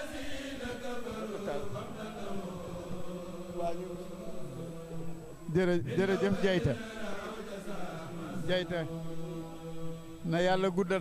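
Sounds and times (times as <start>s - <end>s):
person chanting: 0.0s - 11.0s.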